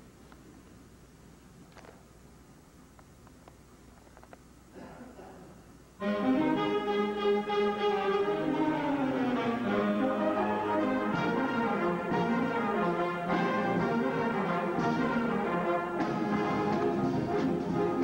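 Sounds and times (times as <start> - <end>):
wind band playing: 6.0 - 18.0.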